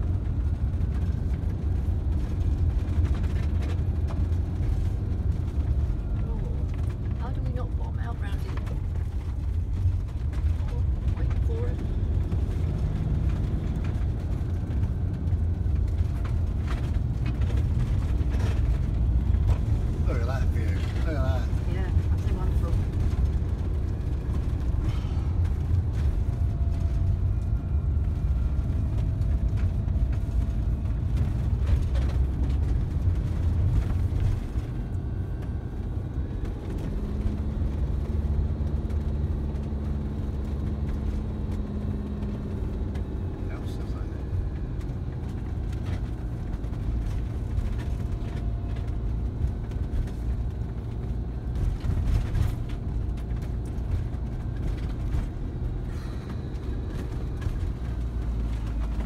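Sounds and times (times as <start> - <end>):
van engine and road rumble: 0.0 - 59.0.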